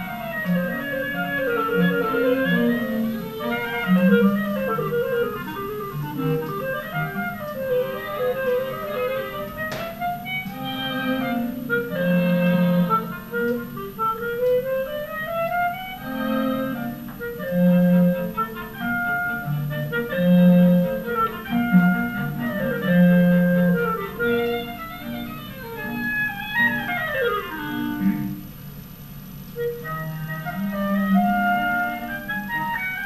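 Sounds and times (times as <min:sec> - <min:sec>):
cello bowed low notes: 0:00.0 - 0:28.6
clarinet melody: 0:00.0 - 0:33.0.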